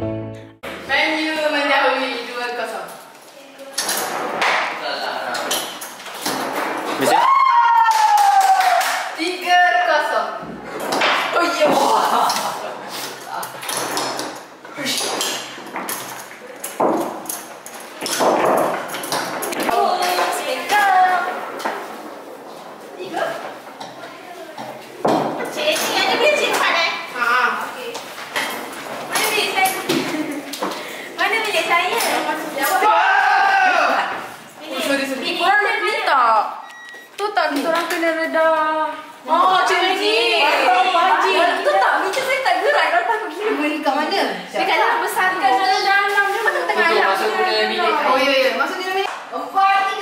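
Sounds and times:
foosball rods clacking: 3.7 - 4.8, 5.4 - 7.1, 10.7 - 24.0, 24.6 - 26.8
foosball ball knocking: 16.8 - 17.2, 18.0 - 20.4, 25.0 - 26.0.

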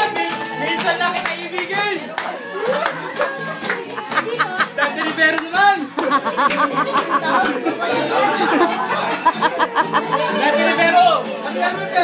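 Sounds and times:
people clapping along: 0.0 - 8.7
people singing and calling out: 0.0 - 12.0.

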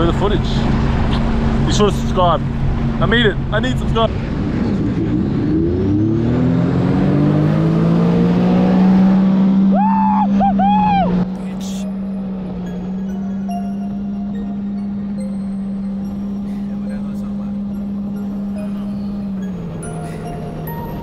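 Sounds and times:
short whoops: 9.7 - 11.2.

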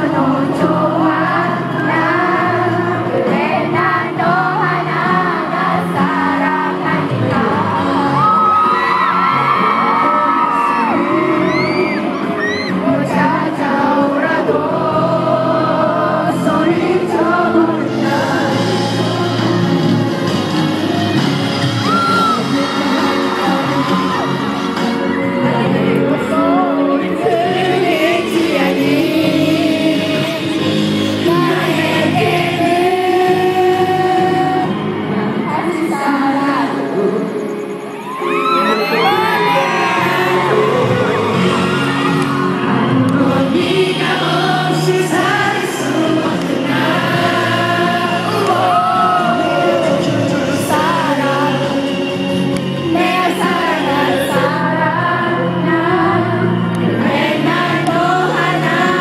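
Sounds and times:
crowd screaming and cheering: 0.0 - 59.0
person singing: 0.0 - 59.0
pop concert music: 0.0 - 59.0
high calls from audience: 37.5 - 43.1.

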